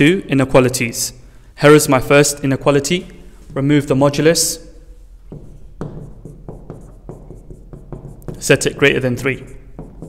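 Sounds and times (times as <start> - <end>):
marker pen writing on whiteboard: 5.1 - 10.0.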